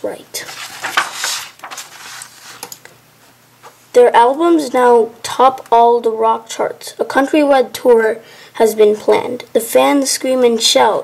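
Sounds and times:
paper page turning: 0.4 - 2.8.

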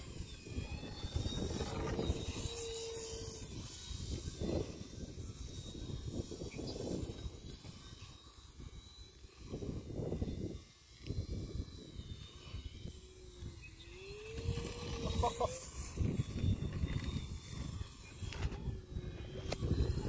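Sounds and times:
wind buffeting microphone: 0.0 - 8.8, 9.4 - 20.0
model plane motor humming: 0.0 - 20.0.

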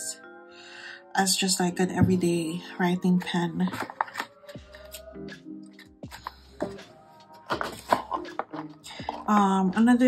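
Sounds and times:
paper rustling: 3.2 - 4.4, 6.1 - 9.4
cardboard box tapping: 7.5 - 9.3.

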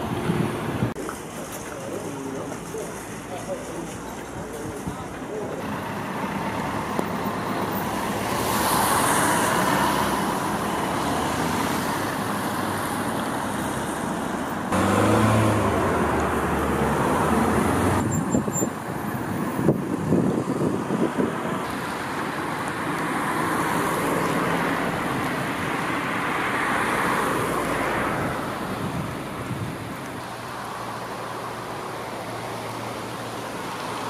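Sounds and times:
road traffic going by: 0.0 - 34.0
loud vehicle passing: 5.6 - 18.2.

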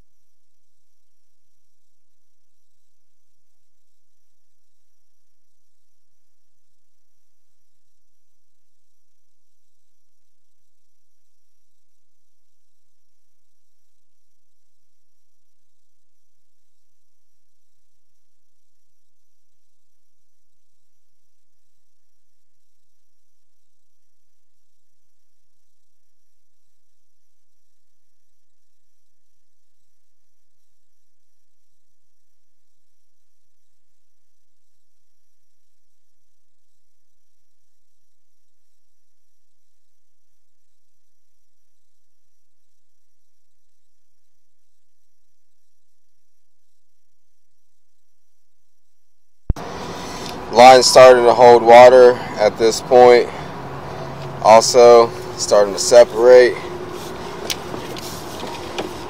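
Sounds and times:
electrical hum and hiss: 0.0 - 59.0
faint high whine: 0.0 - 59.0.

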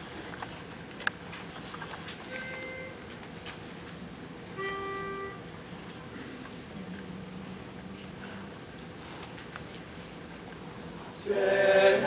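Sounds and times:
short held pitch notes: 2.3 - 3.1, 4.6 - 5.5.

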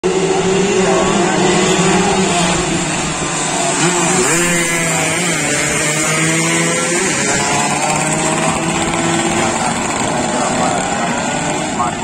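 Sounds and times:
race motorcycles at high revs: 0.0 - 12.0.

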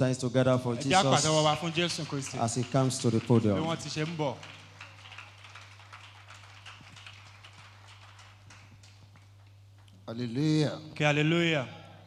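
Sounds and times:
congregation hand clapping: 0.9 - 10.3.

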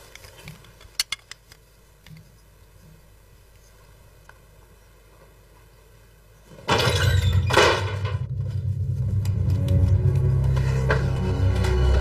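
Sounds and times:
suspenseful droning music: 8.2 - 12.0.

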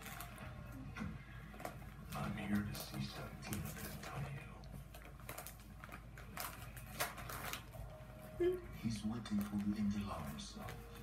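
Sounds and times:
wrapping paper crinkling and tearing: 0.0 - 0.6, 1.4 - 11.0.

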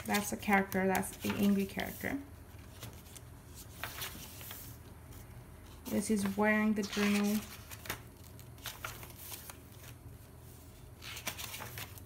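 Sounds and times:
paper rustling: 0.0 - 10.0, 10.6 - 12.0.

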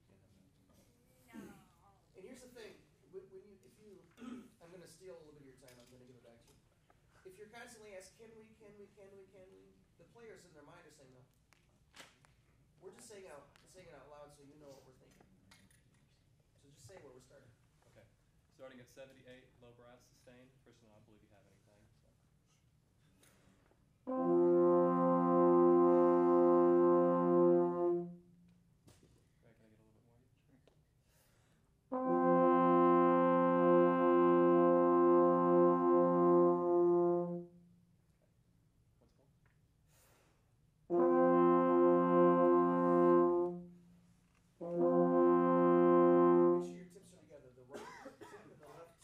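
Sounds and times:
low brass chord: 24.0 - 28.6, 31.9 - 38.0, 40.9 - 47.2.

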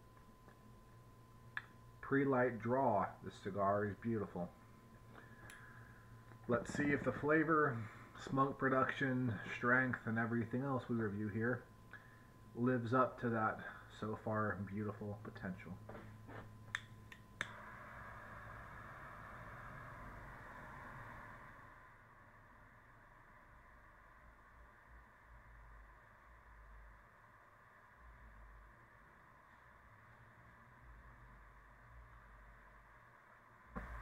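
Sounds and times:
torch flame hissing: 5.2 - 10.0, 17.4 - 22.4, 33.7 - 34.0.

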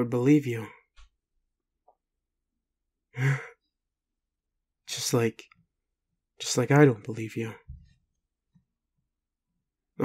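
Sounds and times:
person sighing: 3.1 - 3.6.

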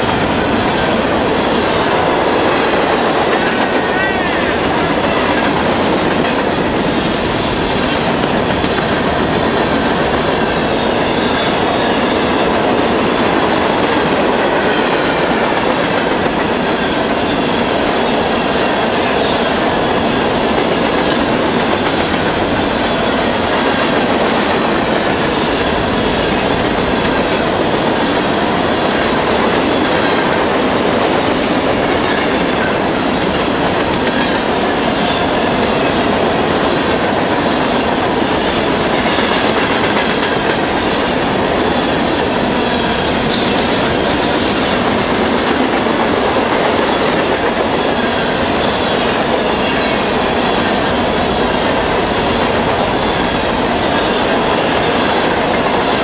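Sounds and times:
clickety-clack over rail joints: 0.0 - 56.0
freight train wheels rumbling: 0.0 - 56.0.

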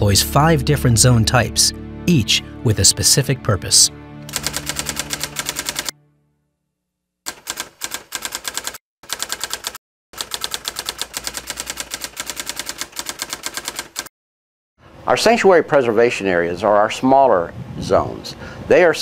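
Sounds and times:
typewriter keystrokes clacking: 4.3 - 5.9, 7.3 - 14.1.

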